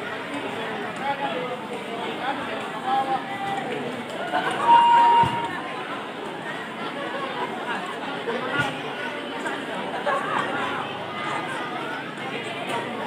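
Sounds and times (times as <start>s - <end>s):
crowd chattering: 0.0s - 13.0s.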